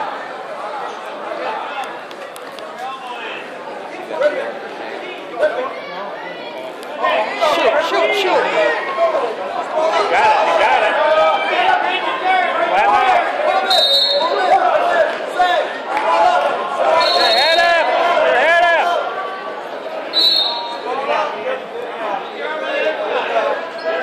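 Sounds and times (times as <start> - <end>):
spectators shouting and cheering: 0.0 - 24.0.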